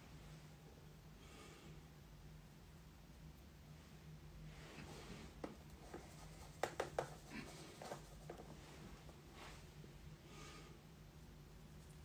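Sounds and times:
brushing and rustling of makeup brushes: 4.4 - 9.8.

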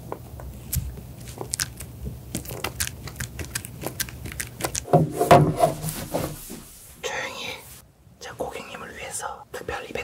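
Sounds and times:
person whispering: 7.0 - 10.0.

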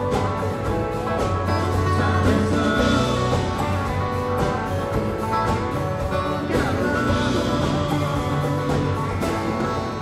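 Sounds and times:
country band playing: 0.0 - 10.0
guitar: 0.0 - 10.0.

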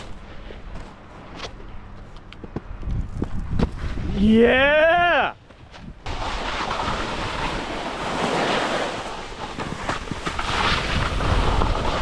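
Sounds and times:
wind rushing on microphone: 2.8 - 4.9.

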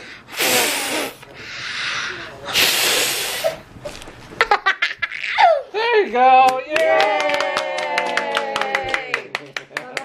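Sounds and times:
puffs of breath blowing: 0.0 - 3.6.

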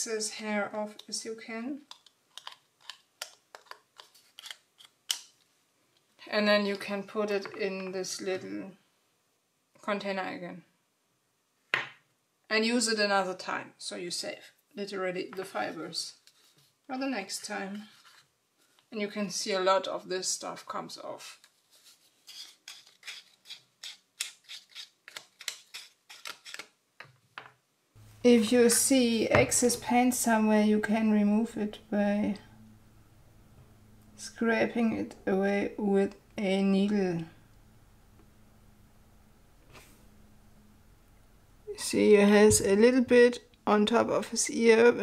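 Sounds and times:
paper scraping doll's head: 17.4 - 18.8, 21.3 - 26.7.

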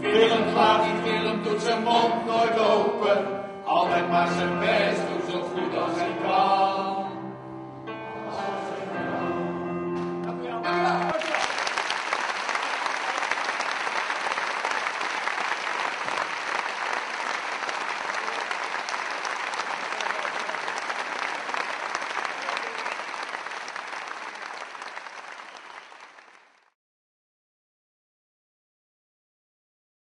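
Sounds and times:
male choir singing chord: 0.0 - 11.1
audience applauding: 10.8 - 26.8.

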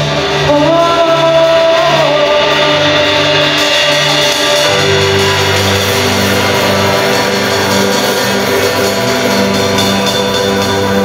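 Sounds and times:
drums and ringing cymbals: 0.0 - 11.0
guitars holding chords: 0.0 - 11.0
live band playing: 0.0 - 11.0.

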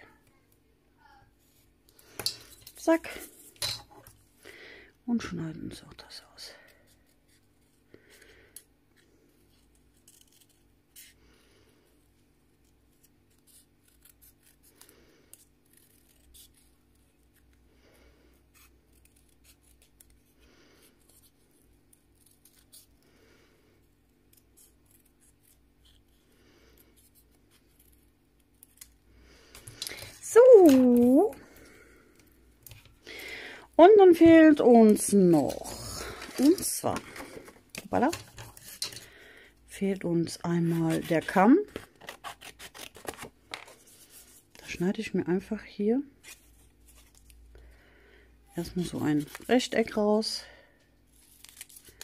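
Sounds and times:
scissors snipping paper: 40.6 - 43.8.

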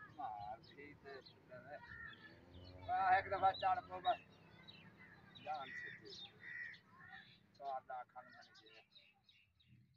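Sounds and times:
faint bird calls: 0.0 - 9.3.

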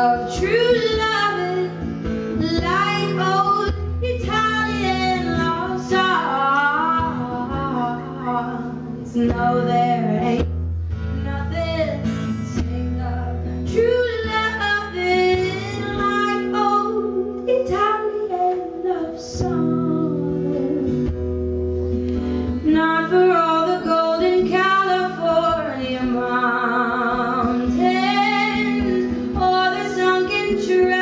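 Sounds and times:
woman singing: 0.0 - 21.4, 22.4 - 31.0
acoustic guitar chords: 0.0 - 31.0.

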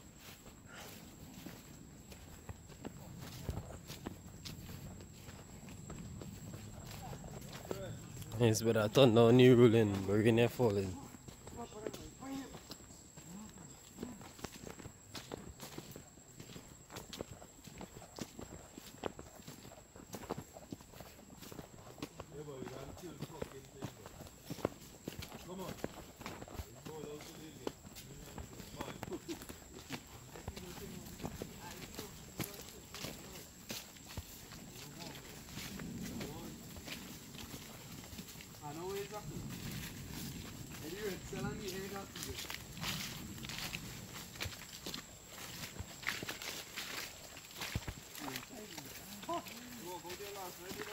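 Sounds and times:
footsteps in mud: 0.0 - 50.9.

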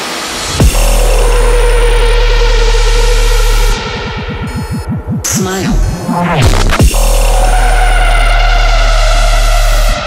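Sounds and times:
sweeping synth bass: 0.5 - 10.0.

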